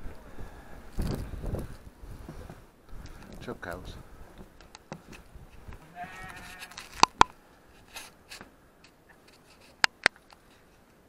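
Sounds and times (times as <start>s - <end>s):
sheep bleating: 5.8s - 6.9s.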